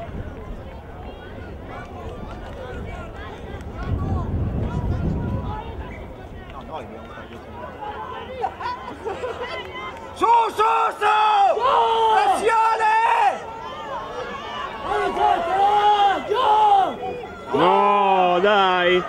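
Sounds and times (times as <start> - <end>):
crowd noise: 0.0 - 19.0
spectators shouting: 1.1 - 19.0.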